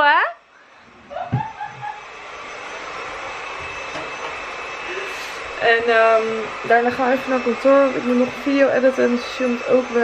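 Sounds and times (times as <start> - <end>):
woman laughing: 1.1 - 2.2.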